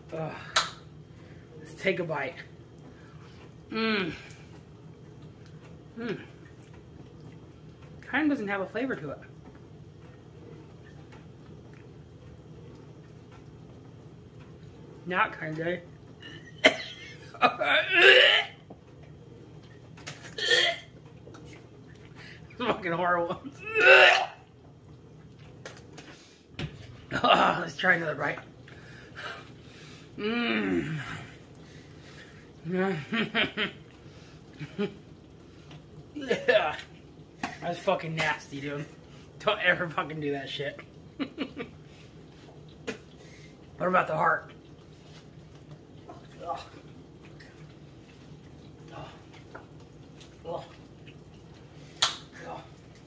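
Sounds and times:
man groaning in disgust: 30.2s - 31.2s.

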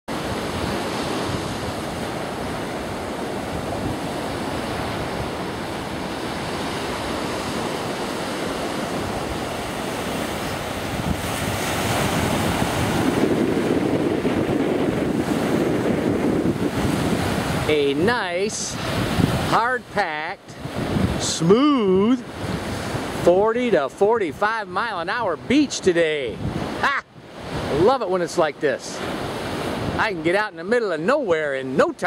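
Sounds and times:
wind on microphone: 0.1s - 24.2s, 25.1s - 28.0s, 29.0s - 30.2s
surf breaking on beach: 0.1s - 32.0s.

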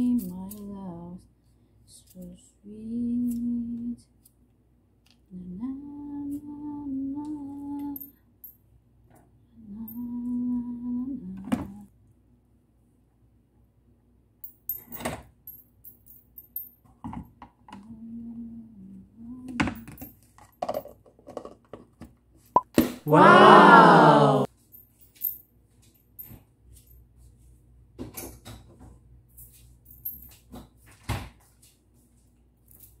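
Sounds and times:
person humming: 17.8s - 19.6s, 23.1s - 24.5s.

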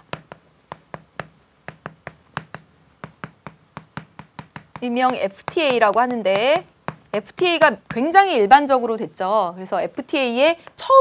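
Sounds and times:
chalk tapping on blackboard: 0.0s - 8.4s.

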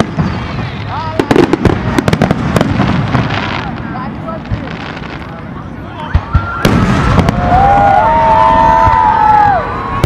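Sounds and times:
fireworks thumps and bangs: 0.0s - 5.2s, 6.0s - 8.0s.

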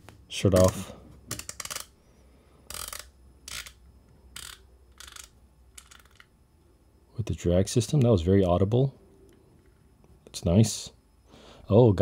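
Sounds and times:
fishing reel drag clicking: 2.7s - 3.8s, 4.4s - 6.2s.

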